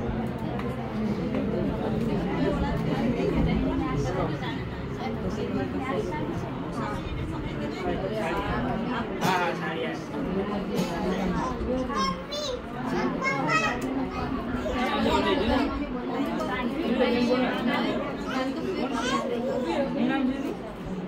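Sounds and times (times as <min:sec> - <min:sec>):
women chattering: 0:00.1 - 0:21.0
children's voices: 0:10.8 - 0:20.7.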